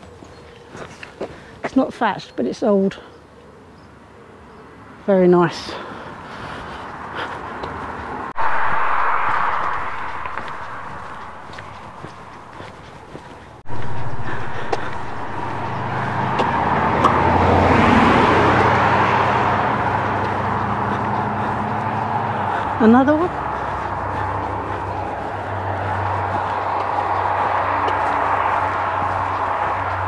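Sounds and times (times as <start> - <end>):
car passing by: 6.9 - 30.0
low engine hum: 8.0 - 30.0.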